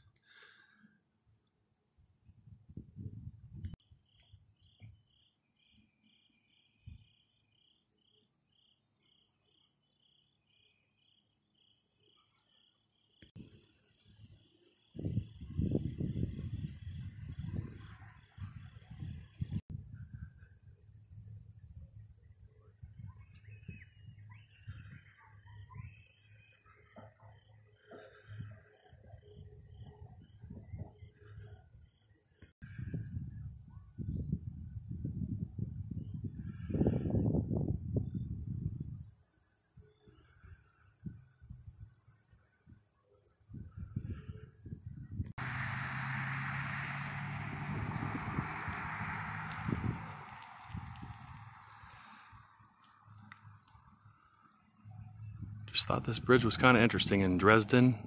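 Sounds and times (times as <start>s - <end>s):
crickets and insects chirping: 3.4s - 58.0s
wind buffeting microphone: 15.0s - 20.2s, 32.7s - 39.0s, 43.5s - 45.3s, 47.4s - 51.5s.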